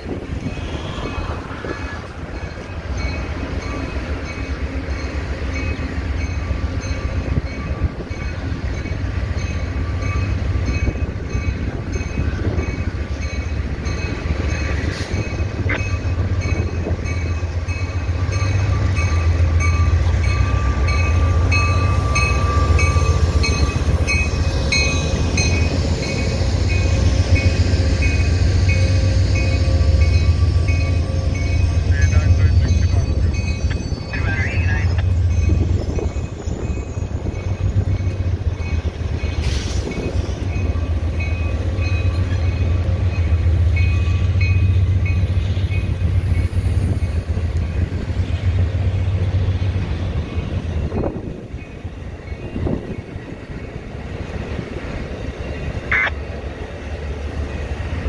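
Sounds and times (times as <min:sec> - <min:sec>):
train engine and rail rumble: 0:00.0 - 0:58.0
locomotive bell ringing: 0:00.4 - 0:53.8.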